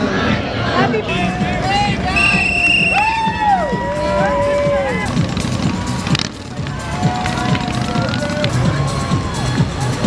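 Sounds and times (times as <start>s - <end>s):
music with thumping beat: 4.6s - 10.0s.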